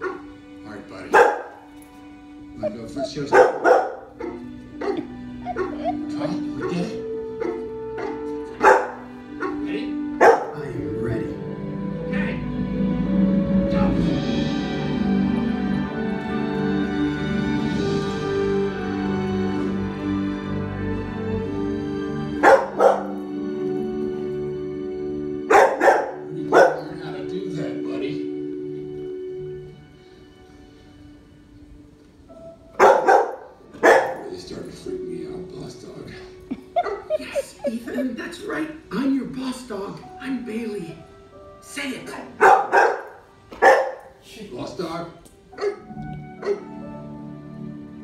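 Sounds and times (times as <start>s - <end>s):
dog barking: 0.0s - 0.3s, 1.1s - 1.7s, 3.0s - 10.6s, 22.4s - 23.2s, 25.5s - 27.0s, 32.8s - 34.3s, 36.8s - 37.2s, 42.4s - 44.2s, 45.6s - 46.8s
film score music: 0.0s - 48.0s.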